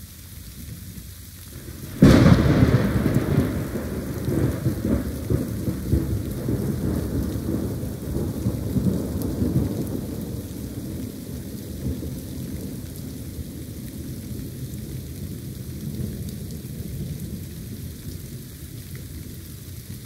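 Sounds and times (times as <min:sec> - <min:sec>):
steady rain: 0:00.0 - 0:20.0
thunder crack and rumble: 0:01.8 - 0:17.5.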